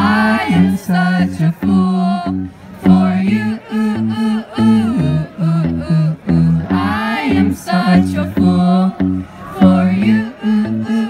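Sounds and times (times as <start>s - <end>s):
low bass notes: 0.0s - 10.9s
electric guitar chords: 0.0s - 11.0s
man singing: 0.0s - 11.0s.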